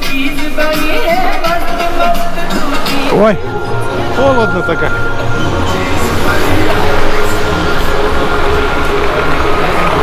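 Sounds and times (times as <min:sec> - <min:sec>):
city street noise: 0:00.0 - 0:10.0.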